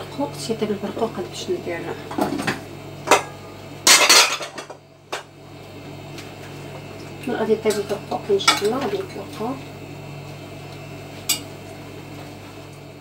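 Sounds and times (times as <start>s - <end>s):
metal pots and utensils clattering: 3.9s - 4.8s.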